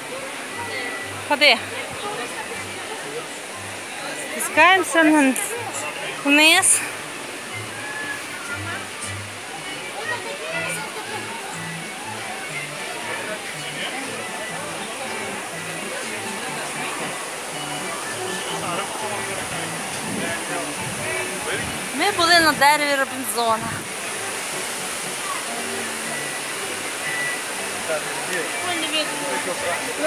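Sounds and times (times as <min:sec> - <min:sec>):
faint voices: 0:00.0 - 0:30.0
falling water rushing: 0:00.0 - 0:30.0
background music: 0:00.5 - 0:30.0.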